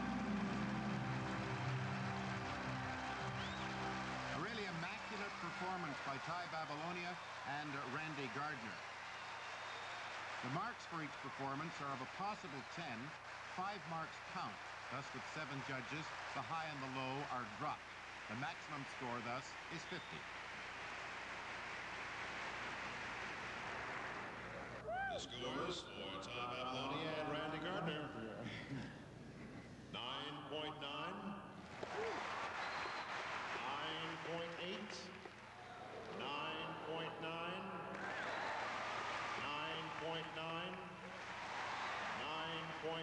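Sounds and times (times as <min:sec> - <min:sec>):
arena audience applauding: 0:00.0 - 0:25.2, 0:31.6 - 0:43.0
man talking: 0:04.3 - 0:08.8, 0:10.4 - 0:20.2, 0:25.2 - 0:28.9, 0:30.0 - 0:31.5, 0:33.5 - 0:35.2, 0:36.2 - 0:38.0, 0:39.4 - 0:41.0, 0:42.1 - 0:43.0
person shouting woo: 0:24.8 - 0:25.3.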